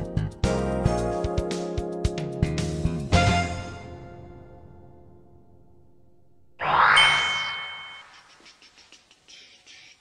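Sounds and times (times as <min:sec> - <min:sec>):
bell-like ding: 0:06.6 - 0:08.3.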